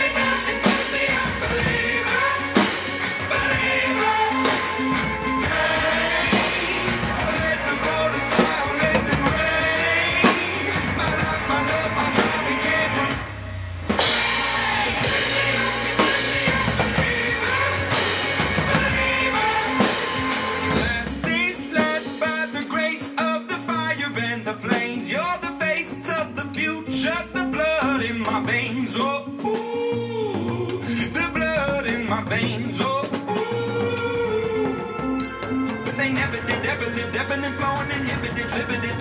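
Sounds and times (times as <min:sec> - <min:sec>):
acoustic drum kit: 0:00.0 - 0:39.0
pop-rock song with singing: 0:00.0 - 0:39.0.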